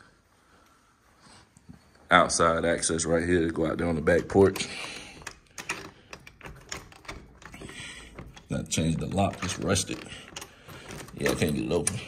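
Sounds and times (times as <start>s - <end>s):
blinds rattling on glass: 3.9s - 12.0s
door lock clicks: 4.2s - 12.0s.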